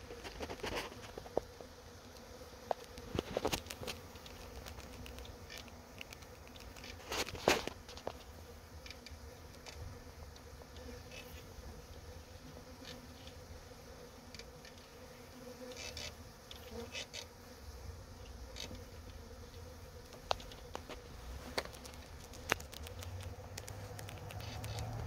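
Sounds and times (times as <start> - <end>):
bee swarm buzzing: 0.0 - 25.0.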